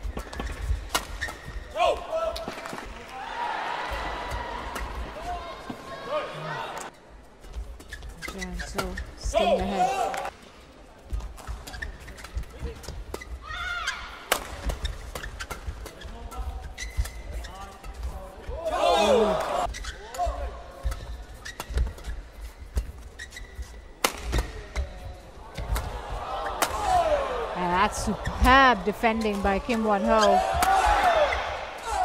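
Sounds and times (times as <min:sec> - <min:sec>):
shoes squeaking on court: 0:00.0 - 0:01.8, 0:07.3 - 0:10.2, 0:11.1 - 0:26.6, 0:28.0 - 0:30.6.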